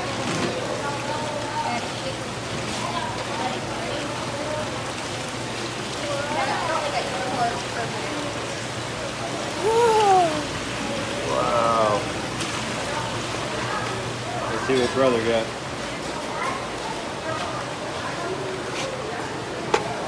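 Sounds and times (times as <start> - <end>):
water running down a flume: 0.0 - 20.0.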